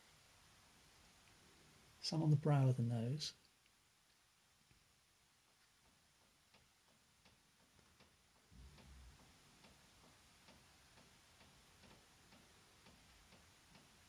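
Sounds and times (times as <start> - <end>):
faint regular ticking: 3.3 - 14.0.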